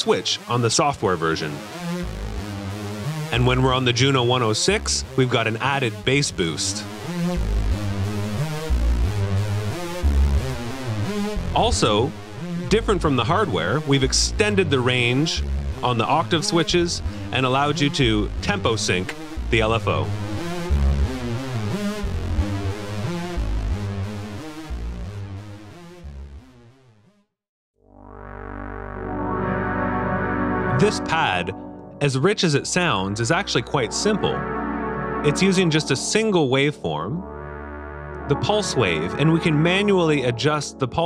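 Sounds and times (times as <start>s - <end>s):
synthesizer lead line: 0.4s - 26.8s, 27.8s - 41.0s.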